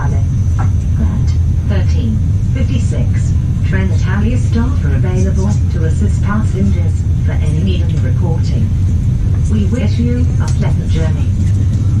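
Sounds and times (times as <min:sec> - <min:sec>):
people talking: 0:00.0 - 0:00.3, 0:00.9 - 0:08.8, 0:09.4 - 0:11.6
train coach rumbling on rails: 0:00.0 - 0:12.0.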